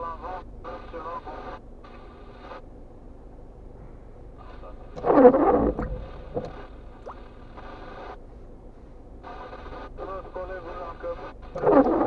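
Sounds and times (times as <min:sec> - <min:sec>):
voice through phone speaker: 0:04.5 - 0:06.5, 0:10.0 - 0:12.0.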